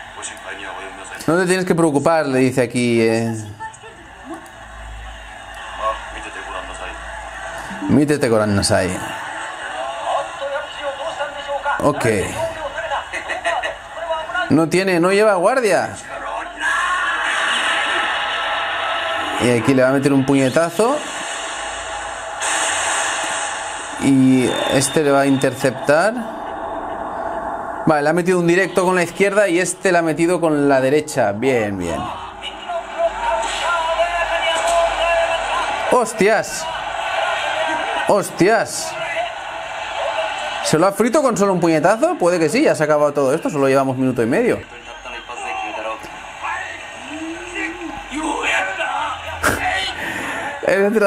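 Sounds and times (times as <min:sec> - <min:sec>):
steady noisy din: 0:00.0 - 0:51.0.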